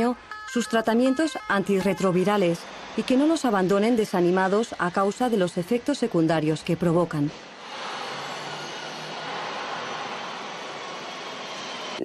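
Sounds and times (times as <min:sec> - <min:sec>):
steady ambient rushing noise: 0:07.5 - 0:12.0.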